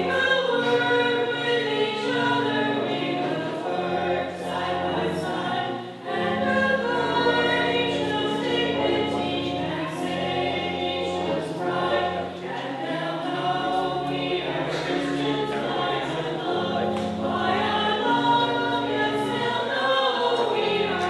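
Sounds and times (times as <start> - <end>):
choir singing a hymn: 0.0 - 21.0
low accompanying chords: 0.0 - 21.0.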